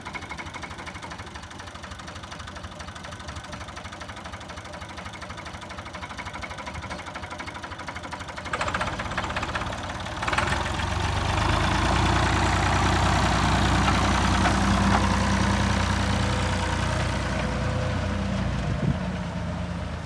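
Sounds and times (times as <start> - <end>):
tractor engine idling: 0.0 - 20.0.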